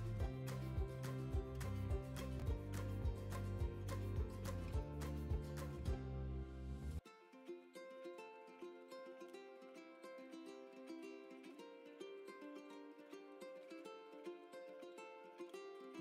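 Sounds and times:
plucked-string background music: 0:00.0 - 0:16.0.

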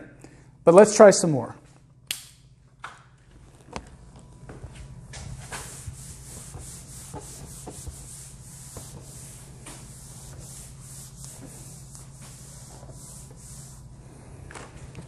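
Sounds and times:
eraser wiping whiteboard: 0:05.2 - 0:14.0.

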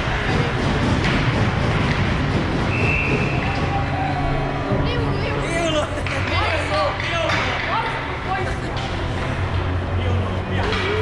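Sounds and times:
low machinery hum: 0:00.0 - 0:11.0
young players shouting and chattering: 0:01.8 - 0:11.0.

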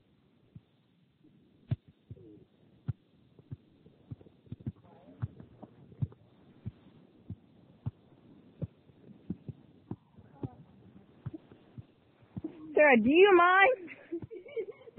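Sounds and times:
ball thumps: 0:08.6 - 0:12.7.

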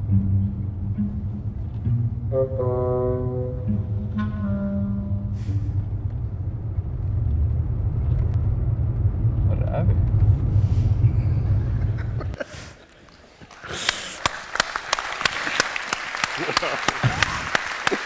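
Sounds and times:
car engine rumble: 0:04.9 - 0:12.4.

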